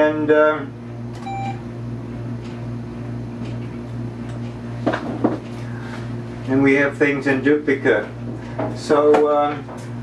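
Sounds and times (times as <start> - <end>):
electrical hum: 0.0 - 10.0
short electronic beep: 1.2 - 1.6.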